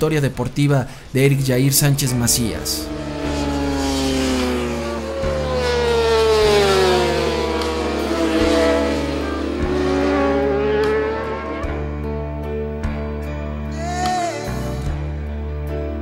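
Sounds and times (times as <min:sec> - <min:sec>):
background music: 0:00.0 - 0:16.0
motorcycle engine: 0:01.7 - 0:13.7.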